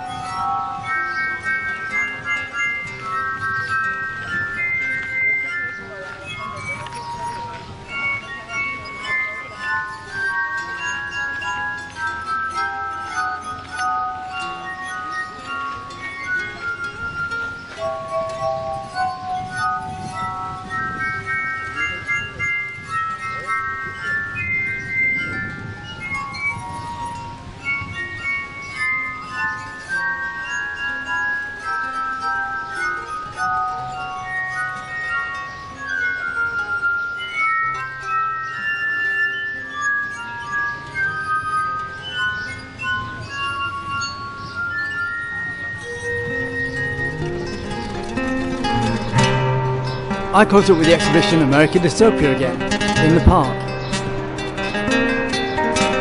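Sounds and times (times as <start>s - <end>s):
glass harp melody: 0.0s - 56.0s.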